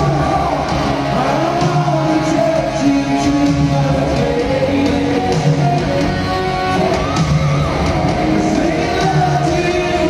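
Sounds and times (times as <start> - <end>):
live rock band playing ballad: 0.0 - 10.0.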